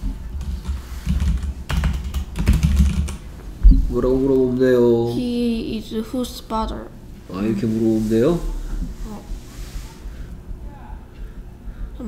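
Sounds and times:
typing on computer keyboard: 0:00.4 - 0:03.2.

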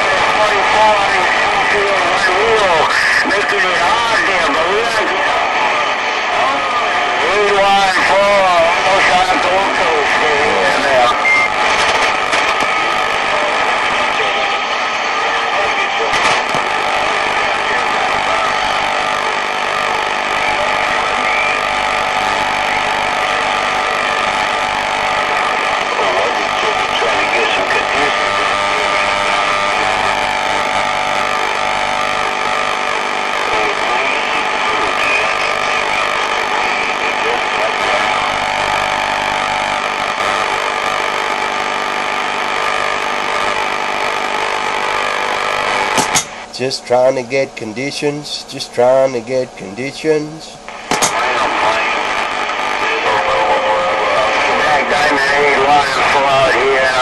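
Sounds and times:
radio static hiss: 0:00.0 - 0:57.0.

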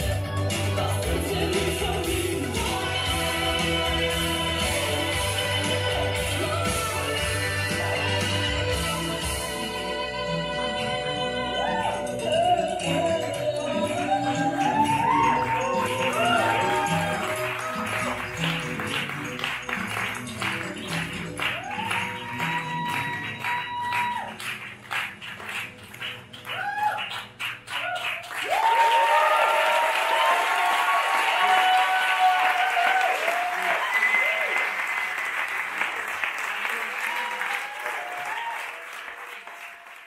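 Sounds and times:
music with a beat: 0:00.0 - 0:24.4
audience applauding and cheering: 0:11.5 - 0:40.0.

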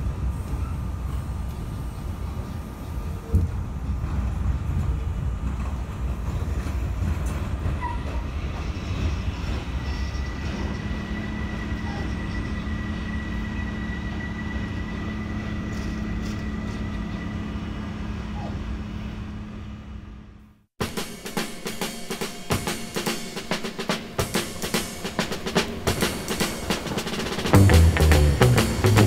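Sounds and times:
subway train rumbling: 0:00.0 - 0:20.7, 0:22.3 - 0:29.0.

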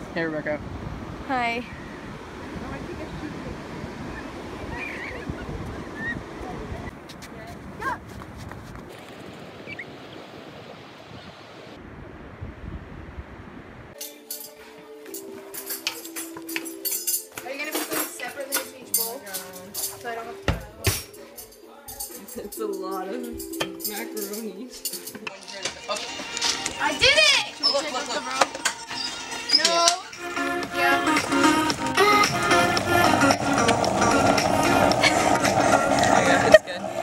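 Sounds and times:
surf washing on beach: 0:00.0 - 0:08.0, 0:32.2 - 0:37.0
background music: 0:14.0 - 0:37.0.

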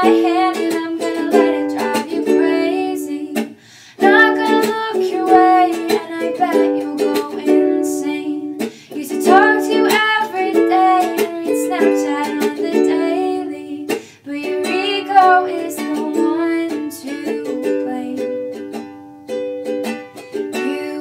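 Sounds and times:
woman singing: 0:00.0 - 0:18.6, 0:20.5 - 0:21.0
ukulele strumming: 0:00.0 - 0:21.0.

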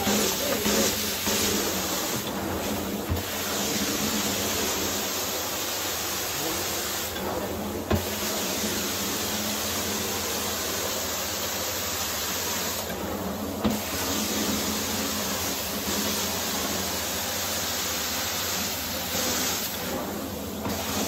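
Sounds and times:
carpet cleaner spray and suction hiss: 0:00.0 - 0:21.0.

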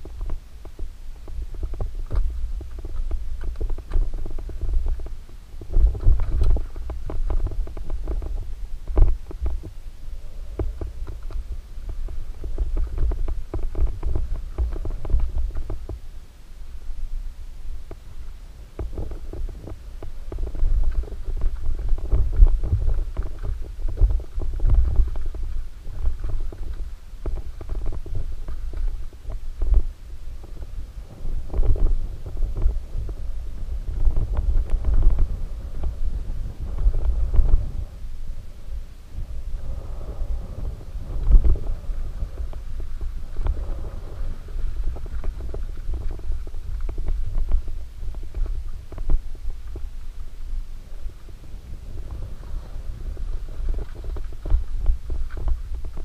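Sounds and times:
bike tyres rumbling over dirt: 0:00.0 - 0:56.0.

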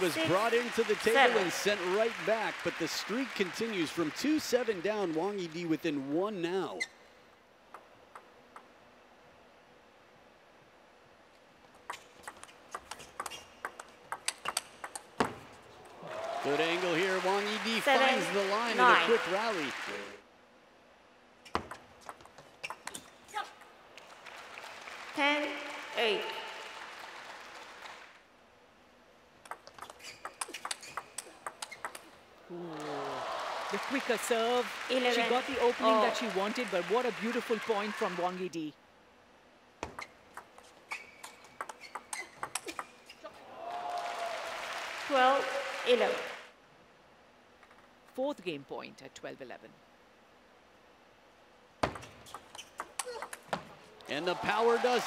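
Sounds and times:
crowd noise: 0:00.0 - 0:05.5, 0:32.5 - 0:38.4, 0:54.0 - 0:55.0
applause: 0:00.0 - 0:05.8, 0:15.9 - 0:20.2, 0:24.0 - 0:28.2, 0:32.7 - 0:38.5, 0:43.6 - 0:46.5, 0:54.1 - 0:55.0
table tennis ball clicking: 0:41.2 - 0:43.0.

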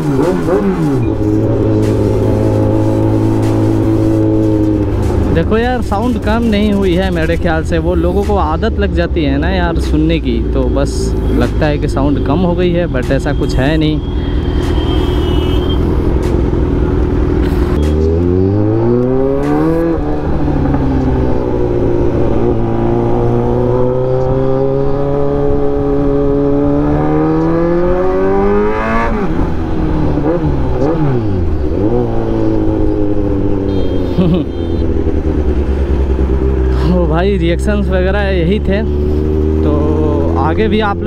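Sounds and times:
motorcycle engine revving: 0:00.0 - 0:41.0.

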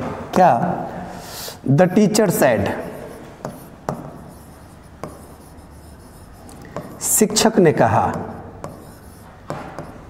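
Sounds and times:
chalk scratching on blackboard: 0:02.2 - 0:10.0
chalk tapping on board: 0:02.6 - 0:10.0.

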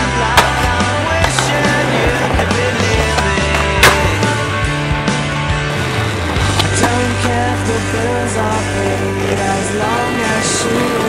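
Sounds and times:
pop song: 0:00.0 - 0:05.3, 0:06.5 - 0:11.0
skateboard clacking: 0:00.0 - 0:11.0
skateboard wheels rolling on pavement: 0:00.0 - 0:11.0
skateboard sharp crack: 0:00.2 - 0:04.8, 0:05.8 - 0:07.8.

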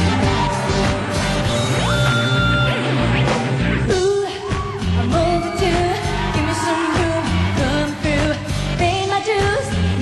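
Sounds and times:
pop backing track with heavy beat: 0:00.0 - 0:10.0
woman singing into microphone: 0:03.9 - 0:10.0.

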